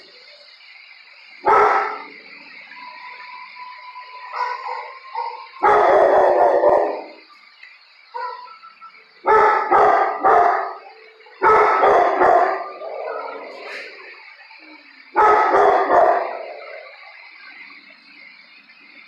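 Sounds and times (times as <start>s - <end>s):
dogs barking: 1.4s - 2.1s, 4.2s - 7.2s, 8.1s - 8.6s, 9.2s - 14.0s, 15.1s - 17.0s.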